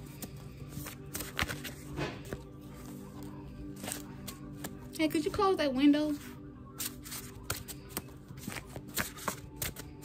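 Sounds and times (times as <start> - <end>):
cards being shuffled: 0.0 - 5.0, 6.1 - 10.0.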